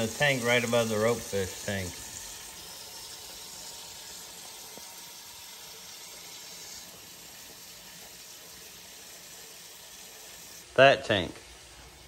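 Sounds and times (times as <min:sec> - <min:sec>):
running water rushing: 0:00.0 - 0:12.0.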